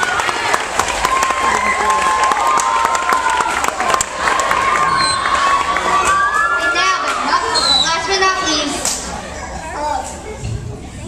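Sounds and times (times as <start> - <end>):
children talking and calling out: 4.8 - 11.0.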